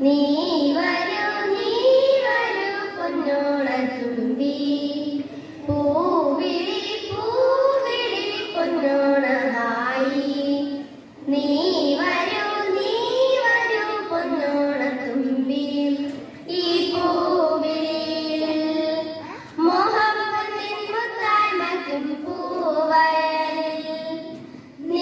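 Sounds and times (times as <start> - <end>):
children singing together: 0.0 - 25.0.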